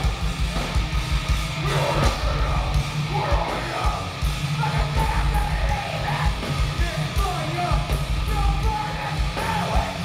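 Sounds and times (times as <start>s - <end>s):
distorted guitars: 0.0s - 10.0s
pounding drums: 0.0s - 10.0s.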